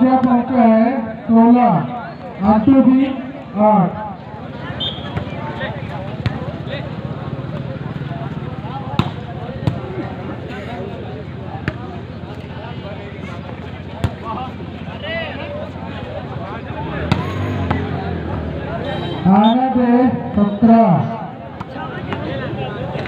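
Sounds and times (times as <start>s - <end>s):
crowd murmur: 0.0s - 23.0s.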